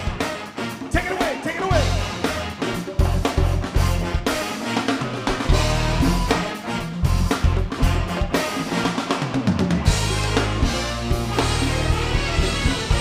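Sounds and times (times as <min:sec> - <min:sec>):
bass: 0:00.0 - 0:13.0
congas: 0:00.0 - 0:13.0
drum kit: 0:00.0 - 0:13.0
electric guitar: 0:00.0 - 0:13.0
saxophone: 0:00.0 - 0:13.0
trumpet: 0:00.0 - 0:13.0.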